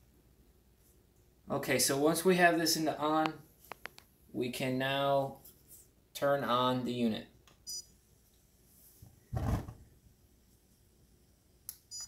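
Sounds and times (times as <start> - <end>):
gas igniting whoosh: 9.3 - 9.8.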